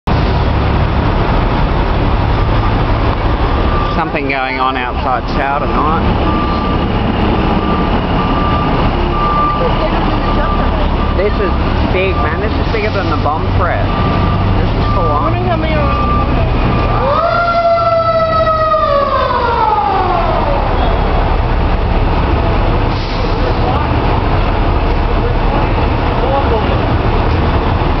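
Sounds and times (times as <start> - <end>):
heavy truck diesel engines: 0.0 - 28.0
street traffic: 0.0 - 28.0.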